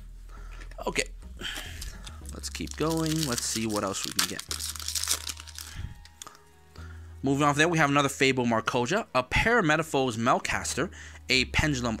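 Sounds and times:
foil wrapper crinkling: 0:01.6 - 0:06.3.

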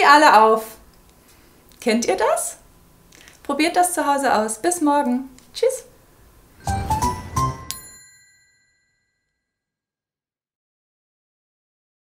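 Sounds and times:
bell-like chime ringing: 0:06.6 - 0:09.4.

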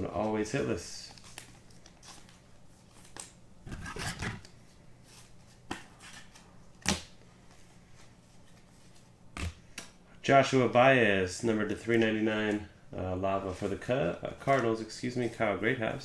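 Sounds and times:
trading cards flipped by hand: 0:01.1 - 0:04.6.

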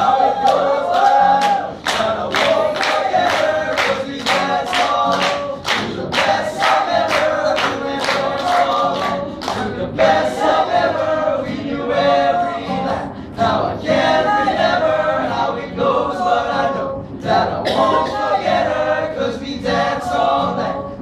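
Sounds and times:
male a cappella singing: 0:00.0 - 0:21.0.

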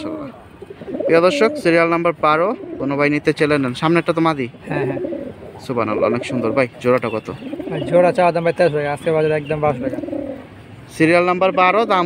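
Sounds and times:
pigeons cooing: 0:00.0 - 0:03.3, 0:04.6 - 0:08.3, 0:09.5 - 0:10.7
man talking: 0:00.0 - 0:10.2, 0:10.8 - 0:12.0.

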